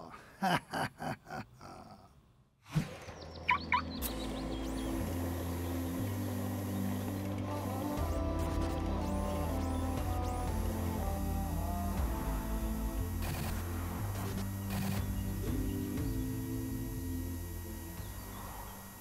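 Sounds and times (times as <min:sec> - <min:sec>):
quick chirping effects: 0:02.9 - 0:05.2
synthesized background music: 0:02.9 - 0:19.0.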